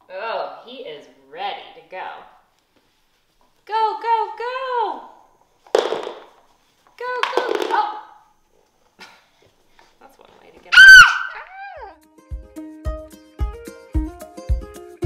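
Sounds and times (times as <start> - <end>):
plucked-string music with beat: 12.0 - 15.0.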